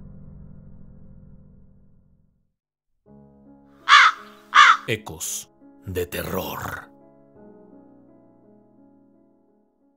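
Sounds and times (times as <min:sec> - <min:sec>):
crow cawing: 0:03.9 - 0:04.9.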